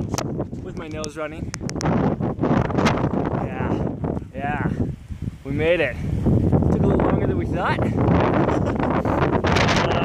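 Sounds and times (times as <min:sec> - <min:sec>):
strong wind buffeting microphone: 0:00.0 - 0:10.0.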